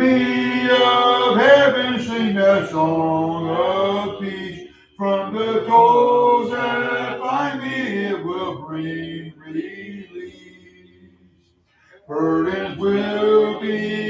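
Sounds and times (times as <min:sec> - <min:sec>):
congregation singing a hymn: 0:00.0 - 0:11.3, 0:11.9 - 0:14.0.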